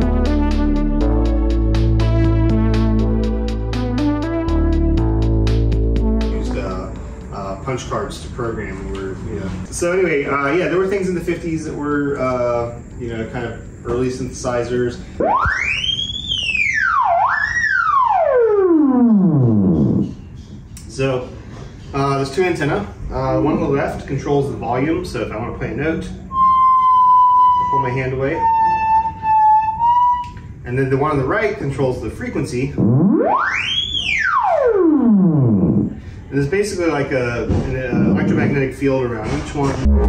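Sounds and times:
theremin gliding tone: 15.2 - 20.4, 26.3 - 30.5, 32.7 - 36.0, 37.9 - 38.6, 39.8 - 40.0.

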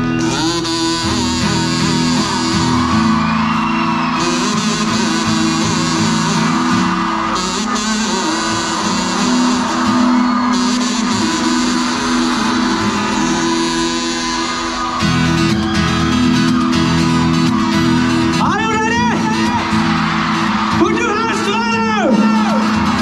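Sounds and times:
live band playing amplified music: 0.0 - 23.0
strummed guitars: 0.0 - 23.0.

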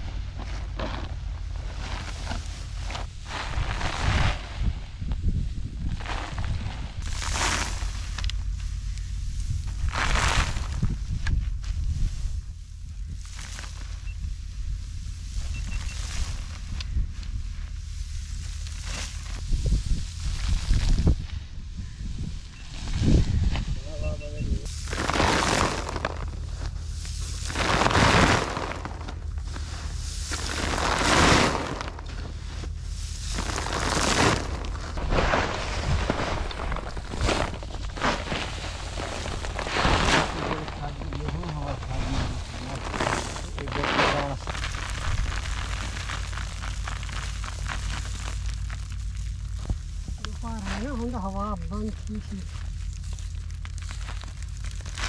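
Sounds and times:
rustling rush of falling straw: 0.0 - 23.8, 24.6 - 51.4, 52.0 - 55.0
wind rumble on microphone: 0.0 - 55.0.

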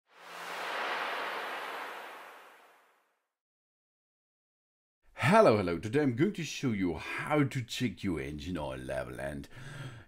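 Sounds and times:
whoosh: 0.0 - 3.1.

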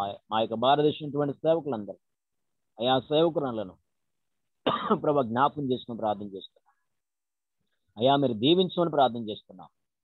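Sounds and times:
man speaking over video call: 0.0 - 10.0.

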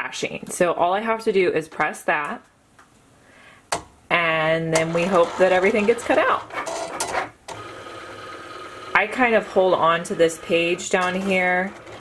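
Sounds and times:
cutting machine motors whirring: 4.7 - 12.0
steady machine tone: 7.5 - 12.0.

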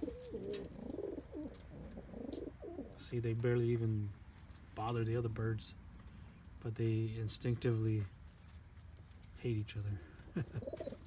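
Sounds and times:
pigeons cooing: 0.0 - 3.0, 9.9 - 11.0.

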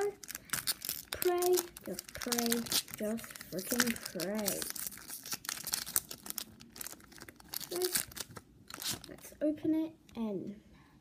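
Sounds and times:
foil wrapper tearing and crinkling: 0.0 - 9.3.

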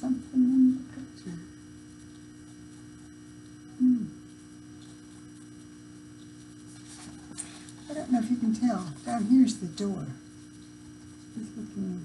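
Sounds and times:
steady electrical hum: 0.0 - 12.0
faint rustling of book: 4.8 - 9.3.

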